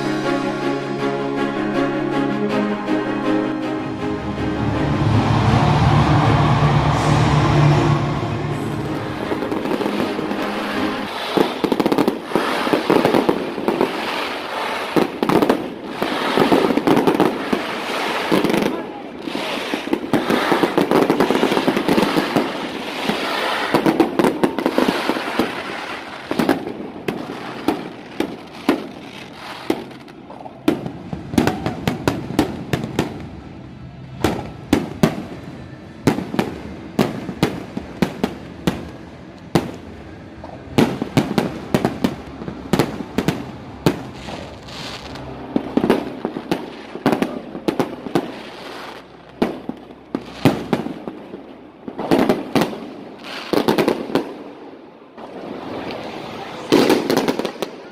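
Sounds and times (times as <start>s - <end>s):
fireworks crackle: 0.0s - 0.6s, 4.9s - 57.9s
fireworks shells bursting: 6.4s - 18.5s.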